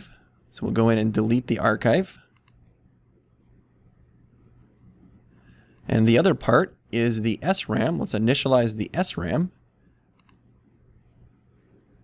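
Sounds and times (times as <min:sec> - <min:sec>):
computer mouse clicks: 0:02.3 - 0:02.7, 0:10.1 - 0:10.5, 0:11.7 - 0:12.0.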